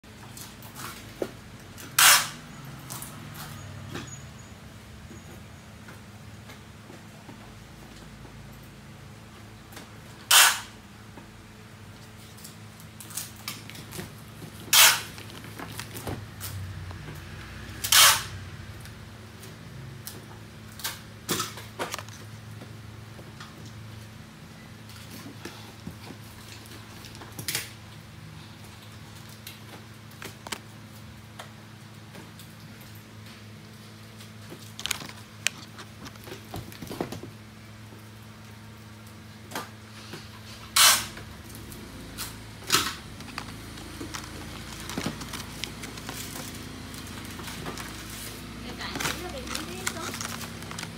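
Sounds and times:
packaging rustling and clicking: 12.0 - 17.1, 34.3 - 37.3, 41.4 - 50.9.

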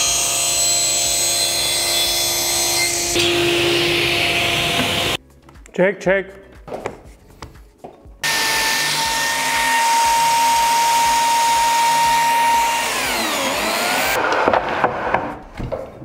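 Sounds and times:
biscuit joiner whining: 0.0 - 5.2, 8.2 - 15.4.

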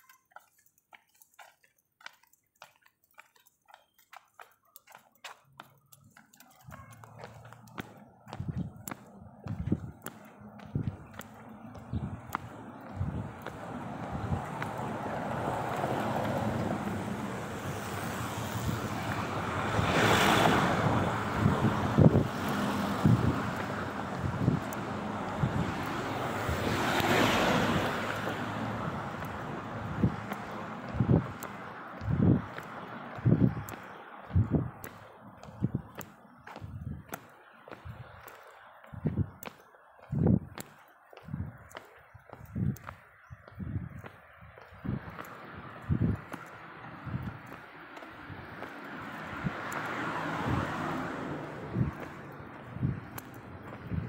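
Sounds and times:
wind noise on microphone: 8.3 - 37.2, 37.8 - 38.3, 38.9 - 54.0.

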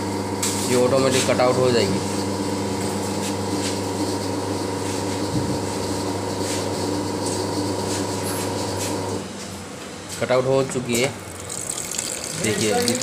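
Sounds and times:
pump motor humming: 0.0 - 9.2, 11.2 - 13.0.

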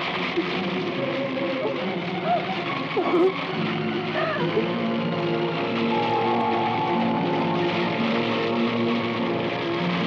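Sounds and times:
dramatic film music: 0.0 - 10.0
shouted cries: 5.7 - 8.6.

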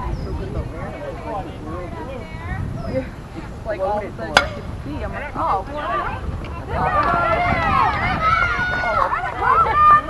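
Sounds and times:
bat striking ball: 4.3 - 4.7
crowd shouting and cheering: 5.0 - 10.0.

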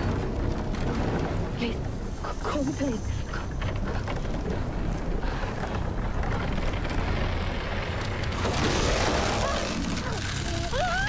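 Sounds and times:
eerie low rumble: 0.0 - 11.0.

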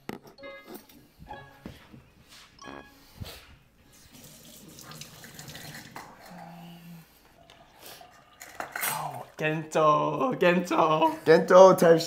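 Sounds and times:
faucet running water into sink: 3.9 - 6.2.

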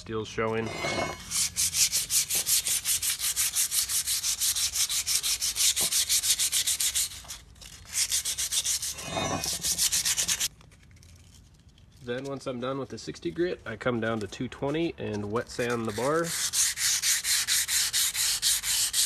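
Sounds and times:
sandpaper sanding steel: 0.8 - 10.5, 15.3 - 19.0.

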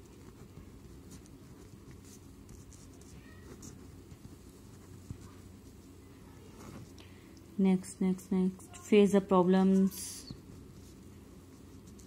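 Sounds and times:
pen scratching on paper: 0.1 - 5.8, 10.7 - 12.0.

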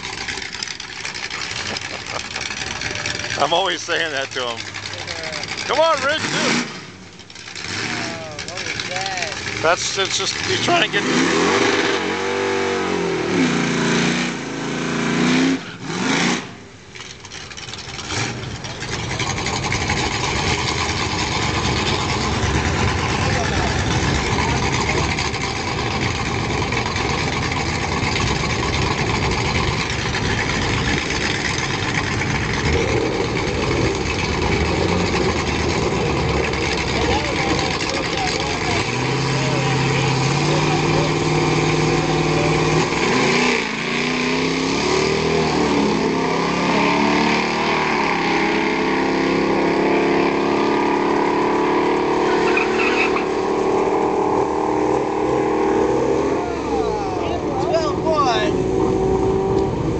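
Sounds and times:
engine idling: 0.0 - 11.0, 16.9 - 42.8
loud even rumbling: 17.4 - 52.4.

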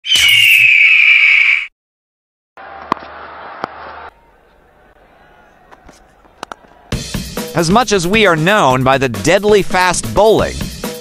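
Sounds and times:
descending whistling tone: 0.0 - 1.7.

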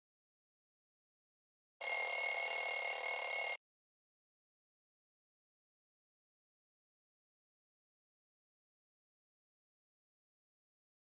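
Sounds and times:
alarm clock bell ringing: 1.8 - 3.6.

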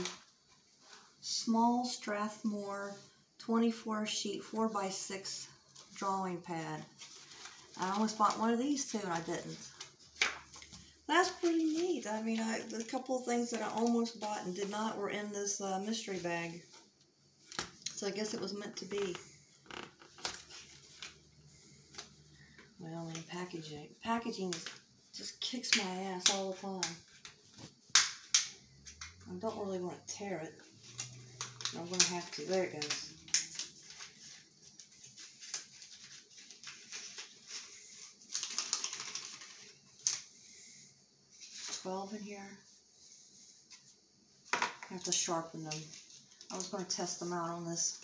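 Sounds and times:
packaging rustling: 6.8 - 14.7, 30.6 - 40.3.

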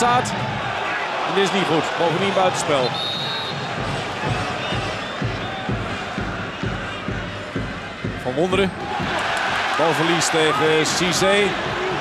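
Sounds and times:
drum beating: 2.1 - 12.0
referee whistle: 2.8 - 3.7.

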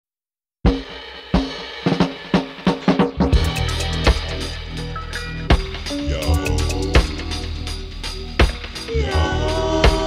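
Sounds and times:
drum fill on snare and bass drum: 0.6 - 10.0
reggae band playing: 0.7 - 10.0.

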